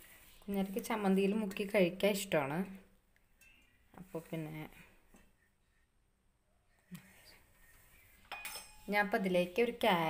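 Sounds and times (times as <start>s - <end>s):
metal clinking on steel jar: 8.3s - 8.9s.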